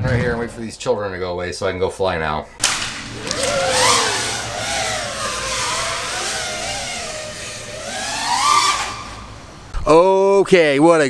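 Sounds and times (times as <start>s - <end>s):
drone motors and propellers whining: 2.6s - 9.8s.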